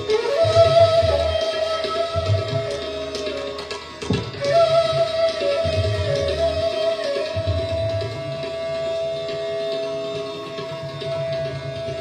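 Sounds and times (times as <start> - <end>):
bamboo flute long note: 0.0 - 9.3
soft tabla playing: 0.0 - 12.0.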